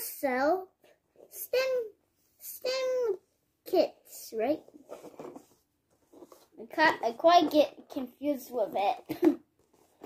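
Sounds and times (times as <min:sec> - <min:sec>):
child talking: 0:00.0 - 0:04.8, 0:06.6 - 0:09.4.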